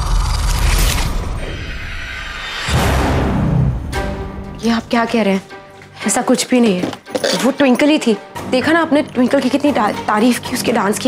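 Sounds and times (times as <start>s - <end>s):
deep boom: 2.5s - 4.0s.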